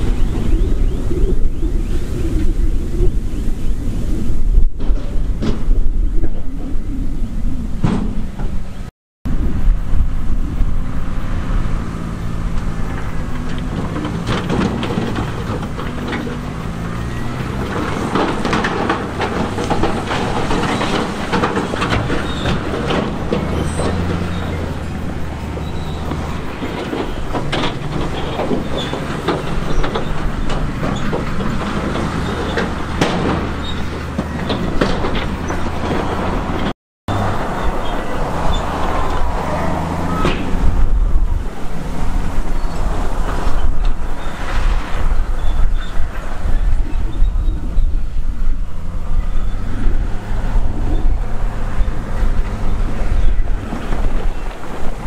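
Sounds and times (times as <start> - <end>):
diesel engines running: 0.0 - 55.0
rock clattering and rumbling: 11.0 - 55.0.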